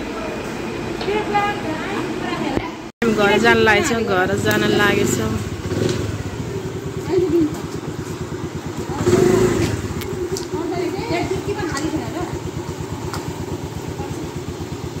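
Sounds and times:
people talking: 0:00.0 - 0:05.5, 0:06.2 - 0:07.9, 0:08.7 - 0:14.8
motorbike engine idling: 0:00.0 - 0:15.0.

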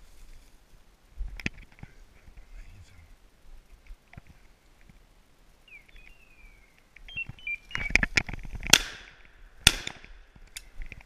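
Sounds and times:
rustling and crackling: 0:00.0 - 0:05.1, 0:05.8 - 0:11.0
shotgun shots with echo: 0:08.7 - 0:10.1.

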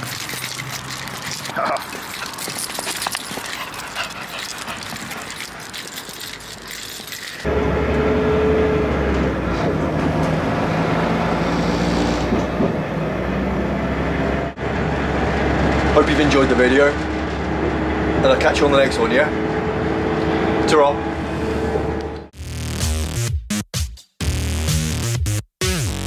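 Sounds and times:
outdoor scuffing and crackling: 0:00.0 - 0:07.5.

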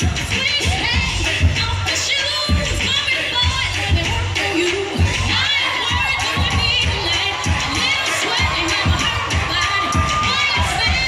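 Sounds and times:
crowd screaming and cheering: 0:00.0 - 0:11.0
dance music with heavy bass: 0:00.0 - 0:11.0.

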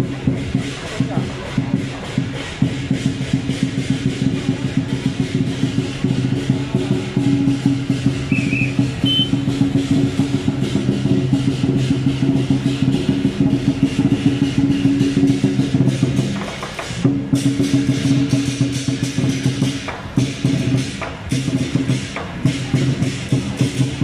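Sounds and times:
cymbals crashing: 0:00.0 - 0:24.0
large drum beating fast: 0:00.0 - 0:24.0.

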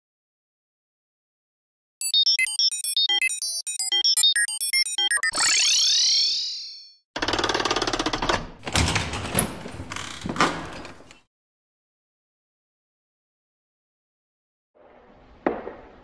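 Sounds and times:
electronic beeps: 0:02.0 - 0:07.0.

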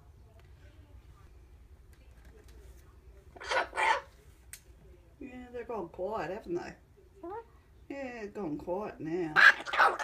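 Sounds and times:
cockatoo squawking: 0:03.4 - 0:04.1, 0:09.4 - 0:10.0.

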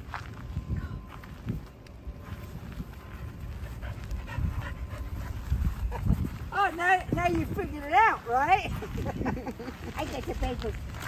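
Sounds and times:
low rumble: 0:00.0 - 0:09.0
dog panting: 0:03.1 - 0:06.5.

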